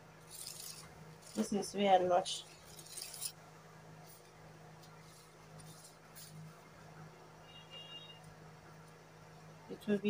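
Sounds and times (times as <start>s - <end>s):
steady low hum: 0.0s - 10.0s
ruler rustling over fabric: 0.2s - 3.4s, 4.0s - 6.6s.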